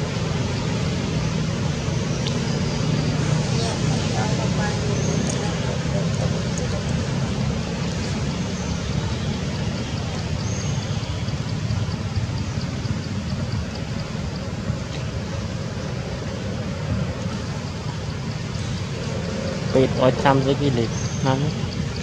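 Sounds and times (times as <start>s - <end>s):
outdoor rumble and hiss: 0.0s - 22.0s.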